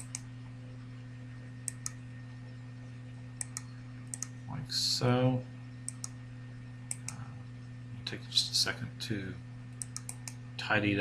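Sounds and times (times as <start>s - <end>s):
computer mouse clicks: 0.0s - 0.2s, 1.6s - 2.0s, 3.4s - 4.3s, 5.9s - 6.2s, 6.9s - 7.2s, 9.8s - 10.4s
low electrical hum: 0.0s - 11.0s.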